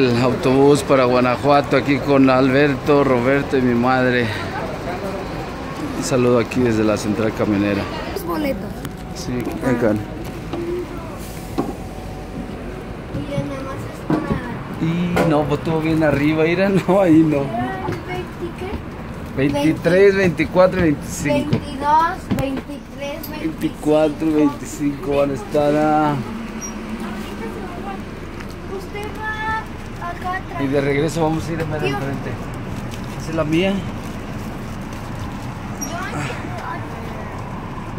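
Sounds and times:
bus engine idling: 0.0s - 37.9s
faint passenger voices: 0.0s - 37.9s.

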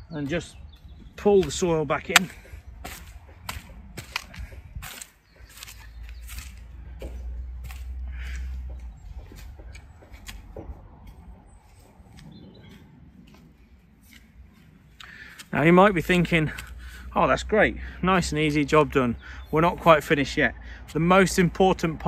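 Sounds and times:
low rumble: 5.8s - 15.0s.

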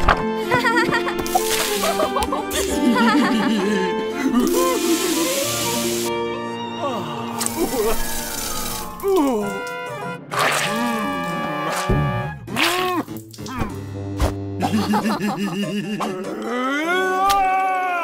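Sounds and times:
bouncy background music: 0.0s - 6.8s, 8.9s - 16.3s
garden hose water spray hissing: 1.2s - 3.2s, 4.4s - 6.1s, 7.4s - 9.4s
wordless cartoon vocal sounds: 10.3s - 13.9s, 14.6s - 18.0s.

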